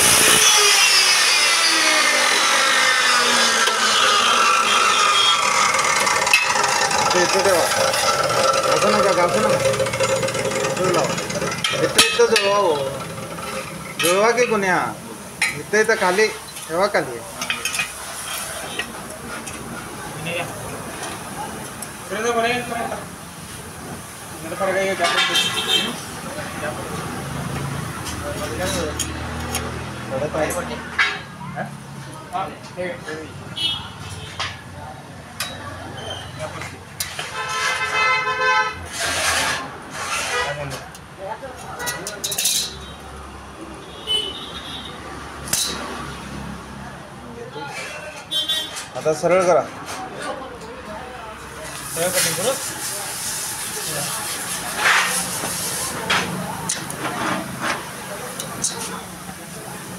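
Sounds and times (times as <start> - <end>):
steel tube scraping on concrete: 0.0 - 14.8, 15.4 - 19.7, 24.4 - 26.0, 28.4 - 29.7, 36.0 - 41.0, 47.7 - 49.2, 51.6 - 59.1
vehicle horn honking: 3.9 - 5.7, 25.2 - 26.0, 37.3 - 38.8, 43.8 - 45.0, 48.3 - 48.8
steel tube clicks and scrapes: 5.2 - 14.6, 38.9 - 42.9, 54.2 - 59.0.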